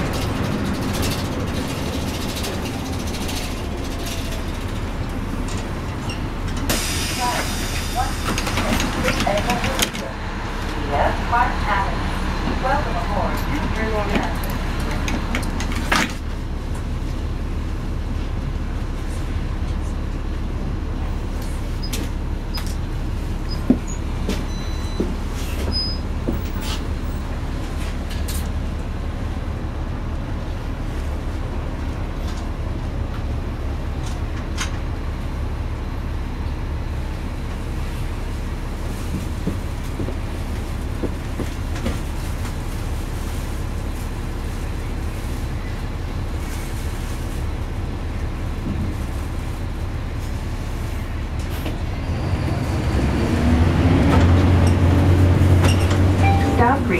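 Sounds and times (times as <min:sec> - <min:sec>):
bus engine rumble: 0:00.0 - 0:56.9
voices: 0:06.8 - 0:15.6, 0:56.2 - 0:56.9.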